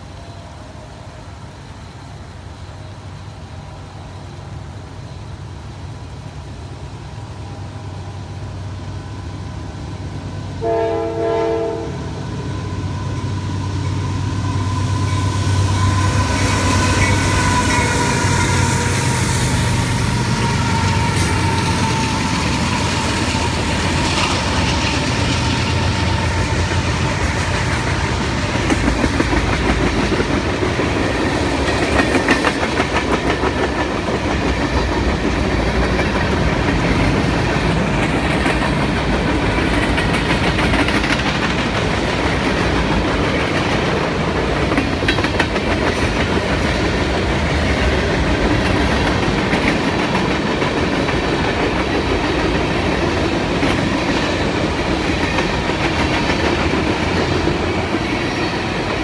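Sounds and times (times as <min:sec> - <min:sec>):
locomotive engine drone: 0:00.0 - 0:59.0
wheels clicking over rail joints: 0:20.2 - 0:59.0.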